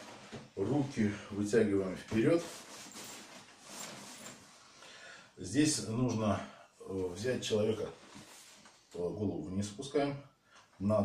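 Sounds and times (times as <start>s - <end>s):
clothing and sheet rustling: 0.0s - 1.2s, 1.9s - 4.8s, 7.1s - 9.0s.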